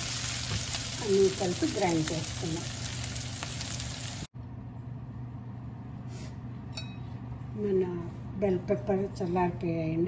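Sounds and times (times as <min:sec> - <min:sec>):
pepper sizzling in oil: 0:00.0 - 0:04.3.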